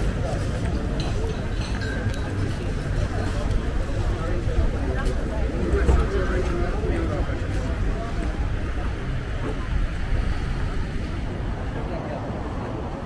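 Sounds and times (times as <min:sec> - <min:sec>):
low outdoor rumble: 0:00.0 - 0:13.0
people talking faintly: 0:00.0 - 0:13.0.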